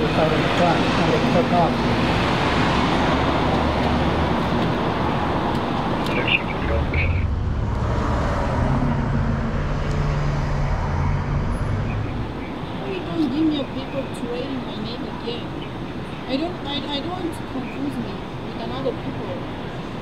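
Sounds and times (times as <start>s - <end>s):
road traffic: 0.0s - 20.0s
vehicle engine humming: 0.0s - 20.0s.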